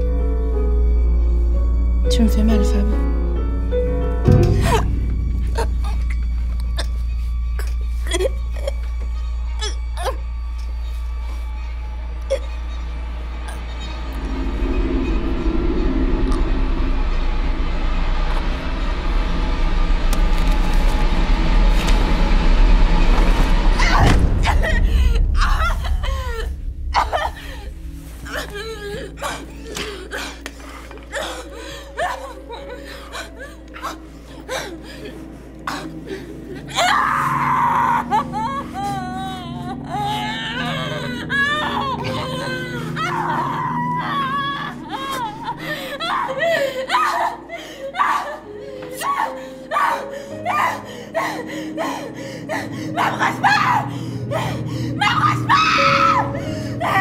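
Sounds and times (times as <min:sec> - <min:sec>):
low rumbling drone: 0:00.0 - 0:46.8
woman crying: 0:04.4 - 0:07.0, 0:07.6 - 0:09.0, 0:23.8 - 0:57.0.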